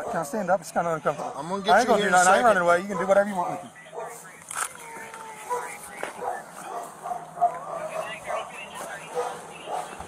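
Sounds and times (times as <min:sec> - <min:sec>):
dog barking and yipping: 0:01.1 - 0:01.4, 0:02.8 - 0:04.2, 0:05.4 - 0:10.0.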